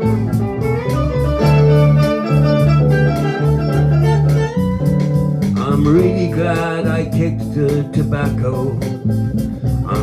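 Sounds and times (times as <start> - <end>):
electric guitar notes: 0.0 - 10.0
low bass notes: 0.0 - 10.0.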